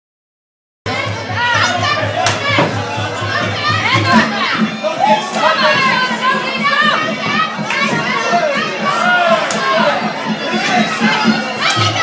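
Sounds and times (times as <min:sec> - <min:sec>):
background music with low beat: 0:00.9 - 0:12.0
spectators yelling and cheering: 0:00.9 - 0:12.0.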